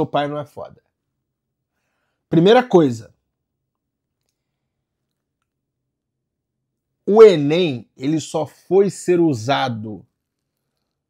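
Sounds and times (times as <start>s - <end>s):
man speaking: 0.0s - 0.8s, 2.3s - 3.2s, 7.1s - 10.1s.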